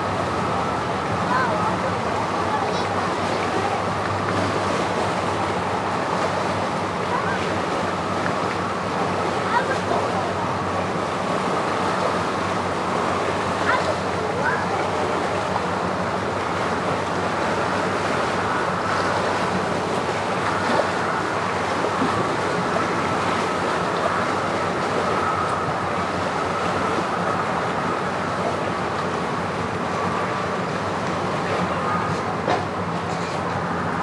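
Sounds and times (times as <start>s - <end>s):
engines idling: 0.0s - 34.0s
wind: 0.0s - 34.0s.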